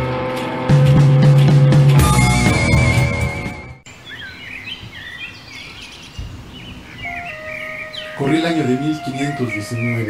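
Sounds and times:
rock music: 0:00.0 - 0:03.8
birds chirping: 0:02.4 - 0:10.0
faint outdoor hiss: 0:03.9 - 0:10.0.

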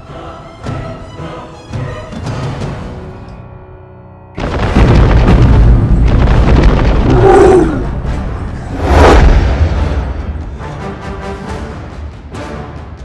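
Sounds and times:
dramatic film music: 0:00.0 - 0:13.0
deep booming rumble: 0:04.4 - 0:08.2
deep pitched cry: 0:07.1 - 0:07.9.

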